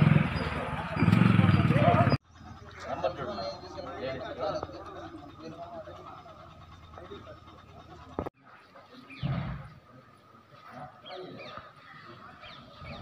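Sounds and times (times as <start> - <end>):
outdoor chatter of people: 0.0 - 13.0.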